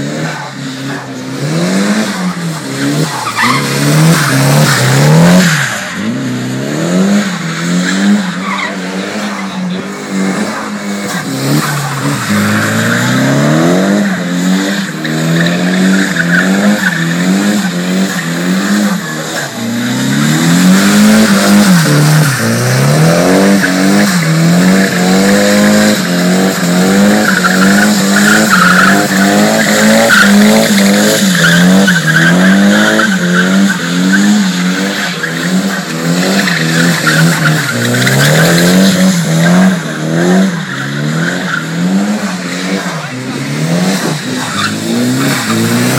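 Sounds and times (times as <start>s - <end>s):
car engine revving: 0.0s - 45.9s.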